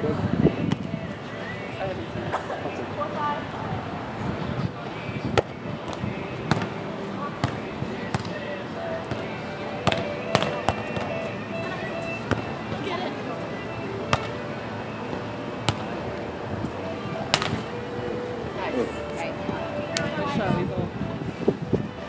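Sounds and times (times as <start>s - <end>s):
murmur of voices: 0.0s - 22.0s
hands smacking volleyball: 9.1s - 11.1s, 14.1s - 14.4s, 17.3s - 17.6s.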